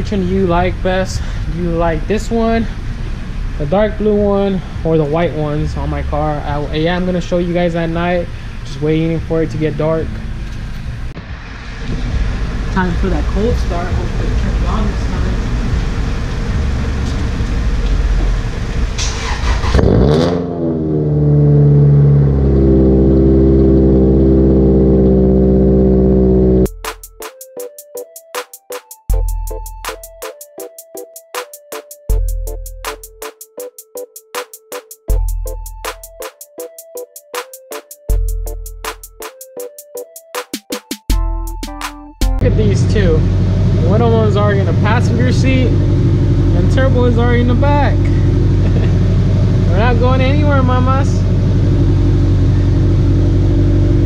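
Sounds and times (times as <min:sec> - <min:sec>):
car engine starting and idling: 0:00.0 - 0:26.7, 0:42.4 - 0:54.0
rushing noise: 0:10.3 - 0:19.8
electronic music with drum hits: 0:26.3 - 0:42.5.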